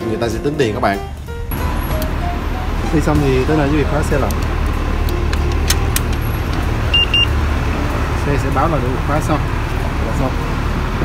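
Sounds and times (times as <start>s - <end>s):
low traffic rumble: 0.0s - 11.0s
short high beeps: 6.9s - 7.3s.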